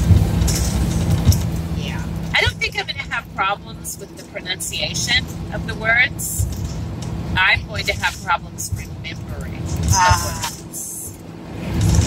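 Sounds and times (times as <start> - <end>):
road noise: 0.0 - 12.0
vehicle engine drone: 0.0 - 12.0
indistinct voices talking: 1.8 - 6.6, 7.2 - 11.2.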